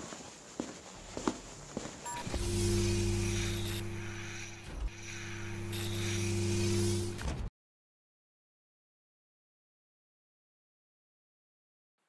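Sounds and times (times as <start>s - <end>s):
footsteps: 0.0s - 2.6s
steady mechanical hum: 0.1s - 7.4s
short electronic beep: 2.1s - 7.2s.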